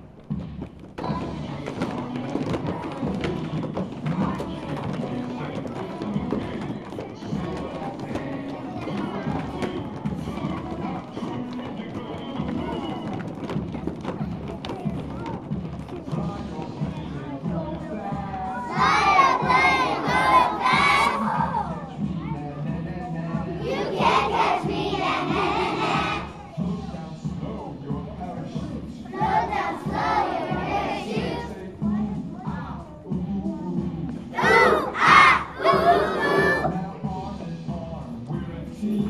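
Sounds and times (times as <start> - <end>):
children shouting in unison: 18.7 - 21.8, 34.4 - 36.8.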